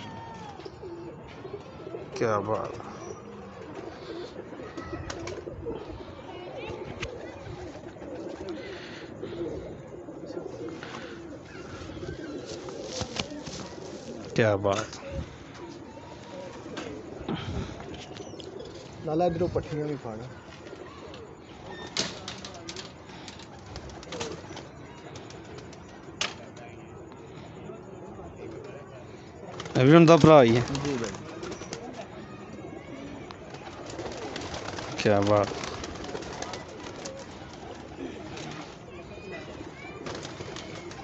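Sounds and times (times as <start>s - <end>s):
pigeons cooing: 0.0s - 26.2s, 26.8s - 41.0s.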